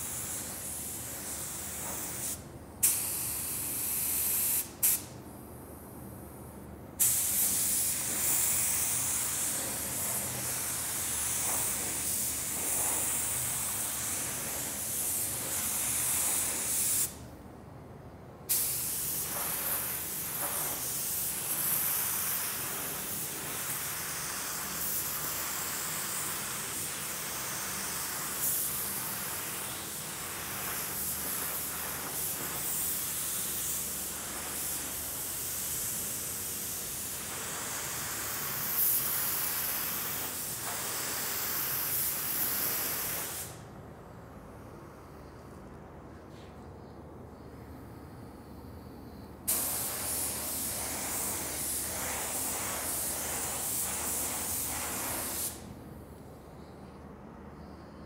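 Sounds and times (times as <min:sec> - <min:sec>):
paint spray gun hissing: 0:00.0 - 0:05.0, 0:07.0 - 0:17.2, 0:18.5 - 0:43.6, 0:49.5 - 0:55.6.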